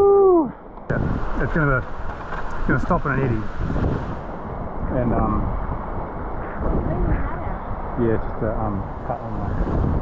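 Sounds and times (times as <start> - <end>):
fast river water rushing: 0.9 - 5.7
wind buffeting microphone: 0.9 - 10.0
voices talking: 2.5 - 3.6, 4.5 - 9.8.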